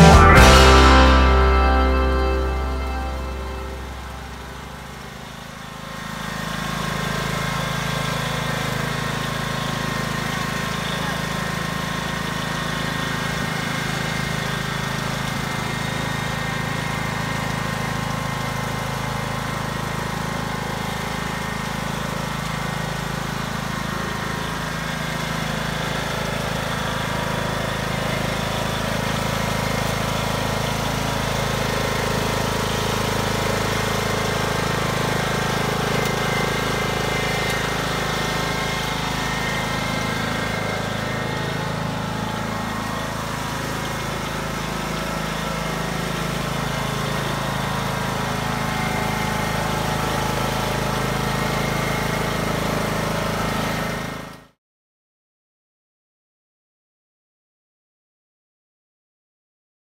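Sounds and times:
riding lawn mower engine running: 0.0 - 54.5.

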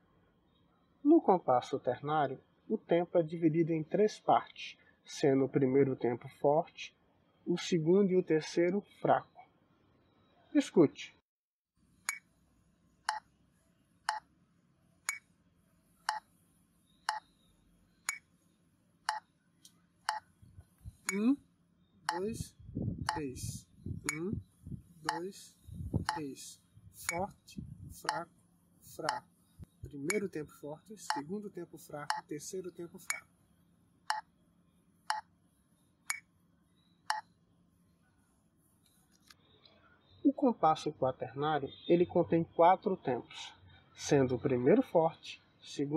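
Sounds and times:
metronome ticking: 21.1 - 21.3, 22.1 - 22.4, 23.1 - 23.3, 24.1 - 24.3, 25.1 - 25.3, 28.0 - 28.2, 29.9 - 30.4, 31.1 - 31.3, 32.0 - 32.3
metronome clicking: 24.1 - 24.3, 30.0 - 30.3.

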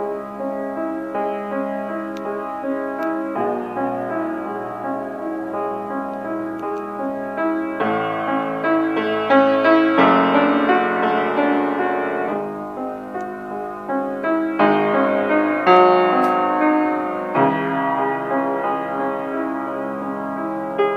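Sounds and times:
out of tune piano playing: 0.0 - 20.9.

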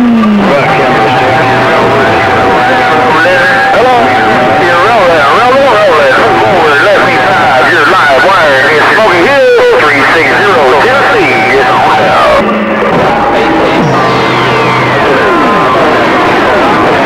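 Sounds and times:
garbled radio voices: 0.0 - 17.0
low hum: 0.0 - 17.0
steady radio whistle: 0.0 - 17.0.

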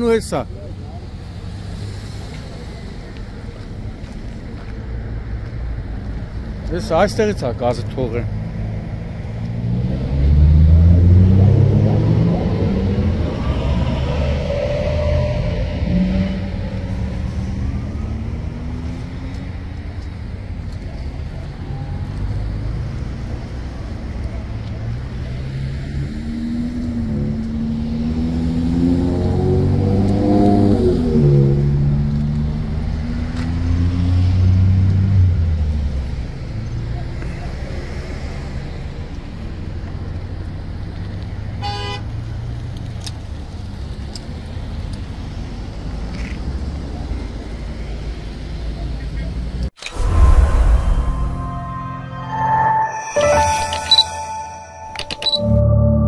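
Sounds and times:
road traffic passing: 0.0 - 55.4.

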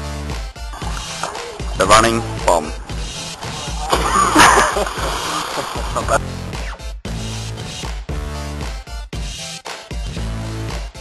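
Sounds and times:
splash into pool: 3.8 - 6.2.

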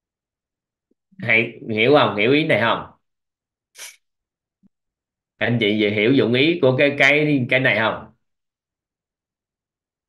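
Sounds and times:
person breathy hiss: 3.8 - 4.0.

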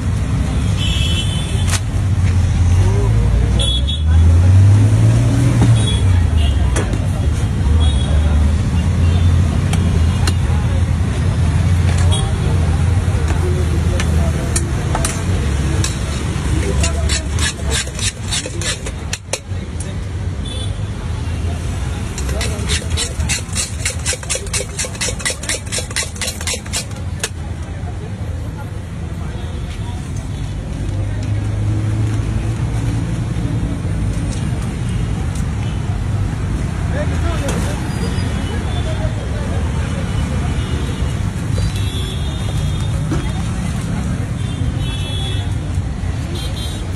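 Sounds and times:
street traffic: 0.0 - 46.9
voices: 5.7 - 31.6, 36.8 - 46.7.

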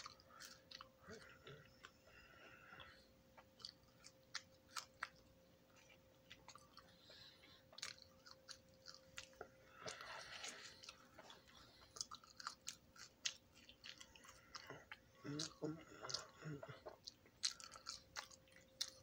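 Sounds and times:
french fries being chewed: 0.0 - 19.0.

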